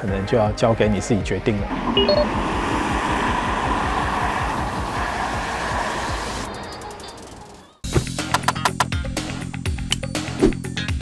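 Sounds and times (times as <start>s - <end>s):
background music: 0.0s - 2.7s, 7.8s - 11.0s
tyre and road noise: 1.3s - 9.0s.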